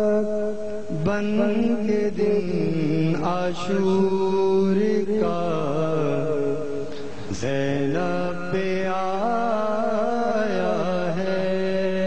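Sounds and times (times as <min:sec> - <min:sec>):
wordless vocal chant: 0:00.0 - 0:12.0.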